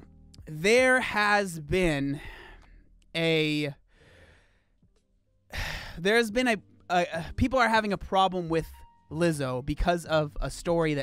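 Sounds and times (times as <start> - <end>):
man speaking: 0.4 - 2.4, 3.1 - 3.8, 5.9 - 11.0
man breathing into microphone: 3.9 - 4.8.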